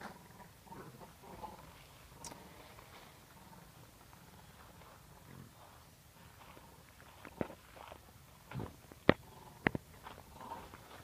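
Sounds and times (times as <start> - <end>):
pig grunting: 0.0 - 2.7, 9.2 - 11.0.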